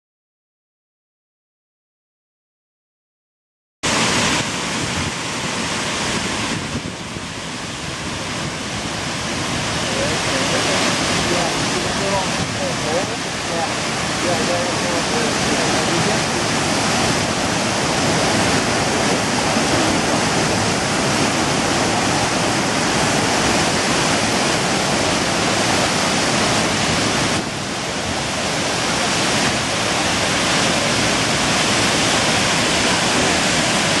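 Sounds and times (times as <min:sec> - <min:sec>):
waterfall rushing: 0:03.8 - 0:34.0.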